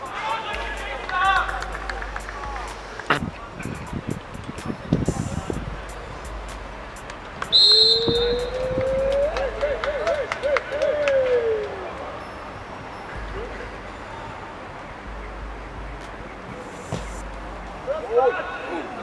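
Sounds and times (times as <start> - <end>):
referee's whistle: 7.5 - 8.7.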